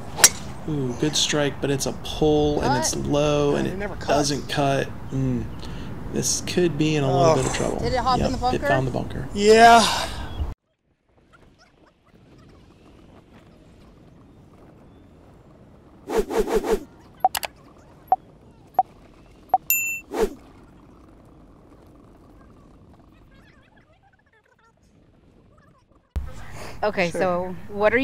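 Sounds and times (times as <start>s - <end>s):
sharp clicks: 17.3s - 17.5s
bright bell-like ding: 19.6s - 20.0s.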